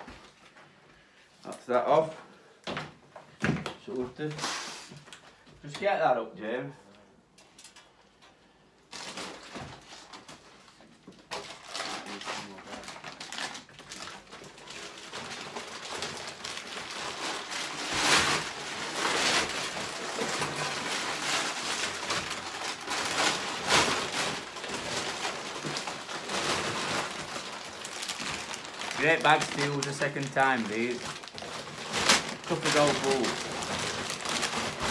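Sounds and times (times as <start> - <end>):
rubble rustling and clattering: 9.0 - 34.9.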